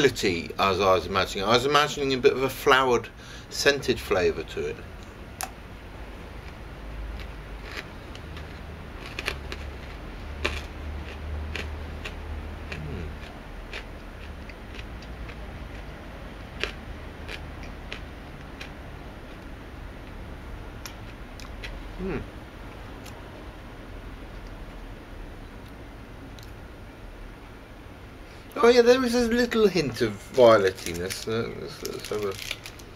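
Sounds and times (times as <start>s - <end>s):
low steady background rumble: 0.0s - 32.9s
chewing crunchy chocolate bar: 6.4s - 15.9s, 16.6s - 19.5s, 30.4s - 32.9s
person humming hmm: 12.8s - 13.2s, 22.0s - 22.3s.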